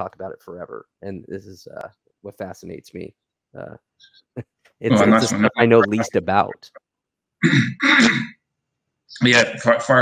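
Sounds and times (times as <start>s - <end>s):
man clearing his throat: 7.4s - 8.4s.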